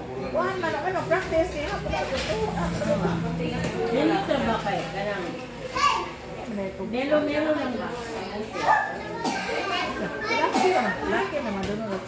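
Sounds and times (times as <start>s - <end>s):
children's voices: 5.6s - 6.4s, 8.0s - 11.6s.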